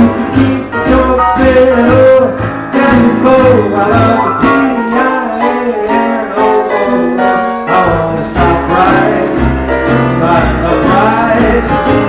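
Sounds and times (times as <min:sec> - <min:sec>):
man singing: 0:00.0 - 0:12.0
piano chords and runs: 0:00.0 - 0:12.0.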